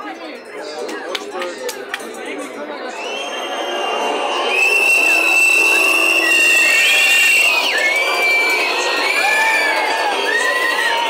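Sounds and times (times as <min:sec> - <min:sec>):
crowd shouting: 0:02.9 - 0:11.0
whistles blowing: 0:02.9 - 0:11.0.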